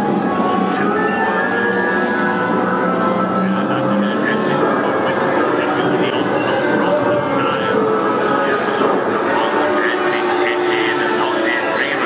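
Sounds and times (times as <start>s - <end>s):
dense mix of voices: 0.0s - 12.0s
rumbling rail running noise: 0.0s - 12.0s.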